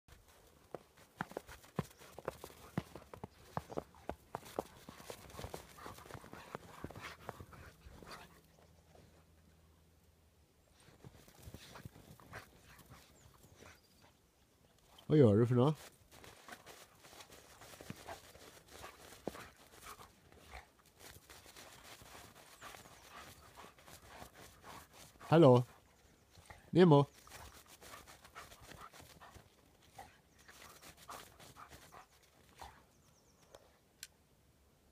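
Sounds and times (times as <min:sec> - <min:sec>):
dog digging in snow: 0:01.2 - 0:08.4, 0:10.8 - 0:13.8, 0:15.8 - 0:25.8, 0:27.2 - 0:32.8.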